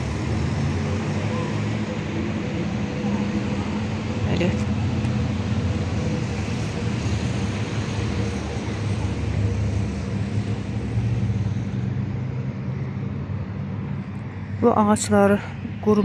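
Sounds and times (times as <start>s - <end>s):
urban traffic rumble: 0.0s - 16.0s.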